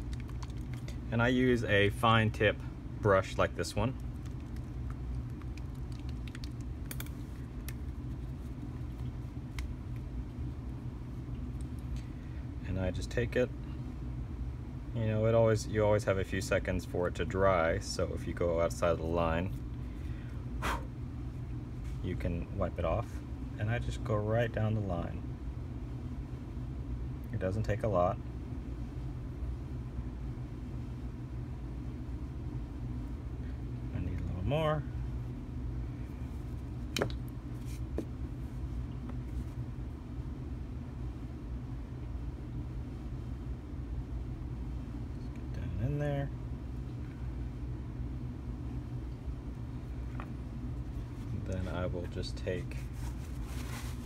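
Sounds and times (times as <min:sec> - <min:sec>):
low background hum: 0:00.0 - 0:54.0.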